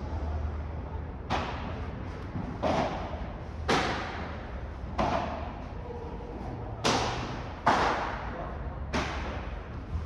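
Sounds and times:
padel ball struck by racket: 5.0 - 5.5, 6.8 - 8.2.

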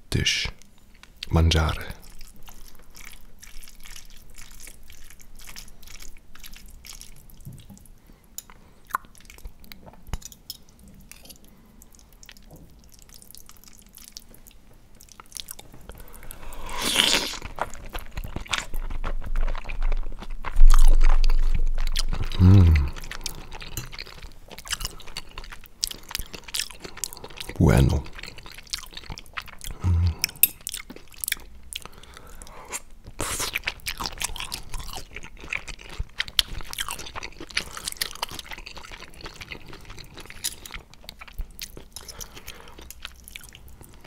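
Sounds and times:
close eating and chewing: 0.6 - 44.0
person humming: 22.3 - 23.0, 29.8 - 30.2.

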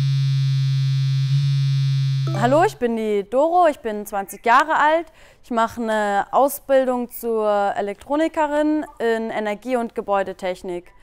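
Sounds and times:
low electronic buzzing tone: 0.0 - 2.8.

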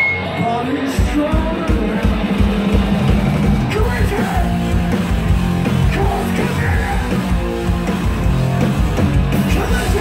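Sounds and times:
distorted electric guitars: 0.0 - 10.0
fast drum beat: 0.9 - 10.0.

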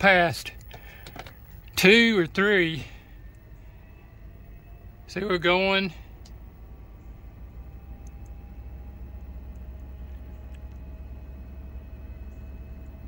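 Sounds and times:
faint fan whine: 0.0 - 13.0
roof vent fan humming: 0.0 - 13.0
light ticks: 6.2 - 6.4.

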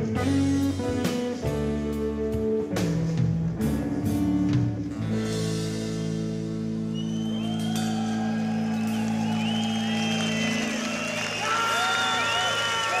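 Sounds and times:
crowd whistling and cheering: 6.6 - 13.0.

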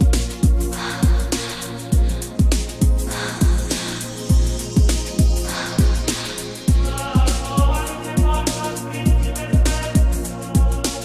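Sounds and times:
disco dance music: 0.0 - 11.0
heavy kick drum: 0.0 - 11.0.

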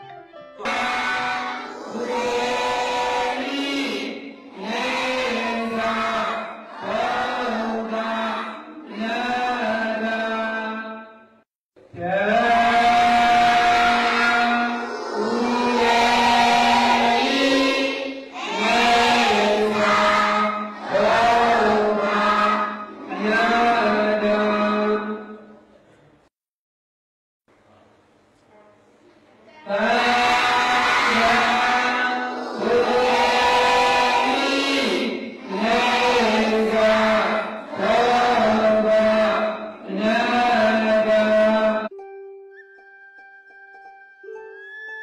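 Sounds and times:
children chanting in unison: 0.6 - 10.1, 12.3 - 24.8, 29.6 - 41.2.

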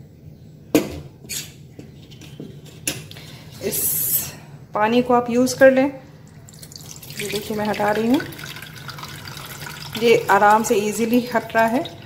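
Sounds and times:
liquid pouring into steel bowl: 6.3 - 12.0.

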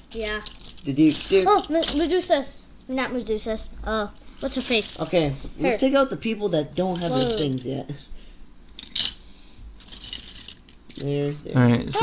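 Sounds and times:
plastic toy figures clattering: 0.1 - 2.4, 4.4 - 5.3, 6.8 - 7.8, 8.8 - 9.2, 9.8 - 11.3.

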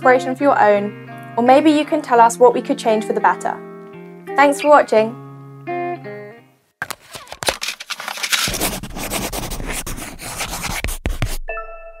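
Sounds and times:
scratchy crackling noise: 6.8 - 11.4.

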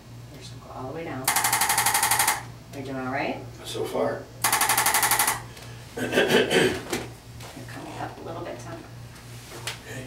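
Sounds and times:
person coughing: 6.0 - 6.9.

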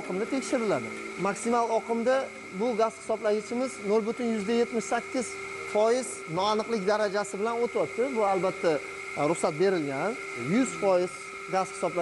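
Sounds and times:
constant high tone: 0.0 - 12.0
man speaking: 0.0 - 12.0
steady background hum: 0.0 - 12.0.

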